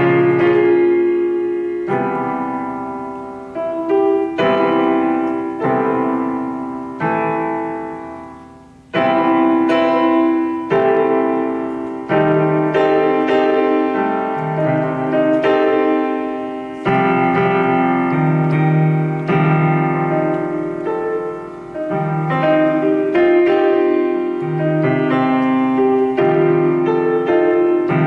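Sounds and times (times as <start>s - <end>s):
electronic piano chords: 0.0s - 28.0s.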